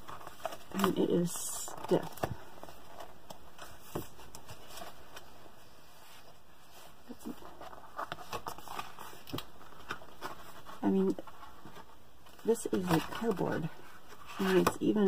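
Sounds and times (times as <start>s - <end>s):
stiff pages turning: 0.0s - 5.3s, 6.7s - 15.0s.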